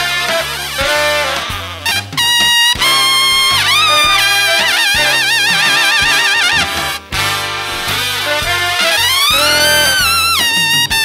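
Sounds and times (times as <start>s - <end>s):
jazz big band playing: 0.0s - 11.0s
solo trumpet high notes: 0.0s - 11.0s.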